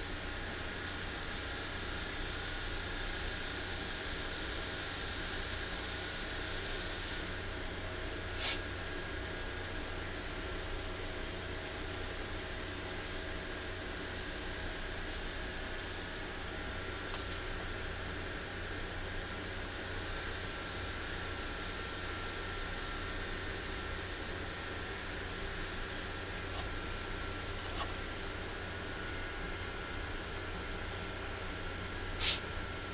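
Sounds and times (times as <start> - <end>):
constant low hum: 0.0 - 32.9
even hiss: 8.3 - 8.6, 32.2 - 32.5.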